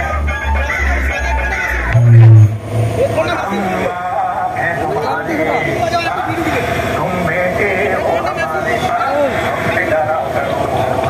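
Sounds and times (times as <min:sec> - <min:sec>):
music with heavy pulsing bass: 0:00.0 - 0:03.8.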